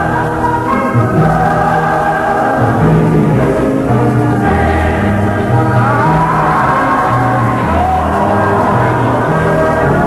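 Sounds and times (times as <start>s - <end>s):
gospel choir with instruments: 0.0s - 10.0s.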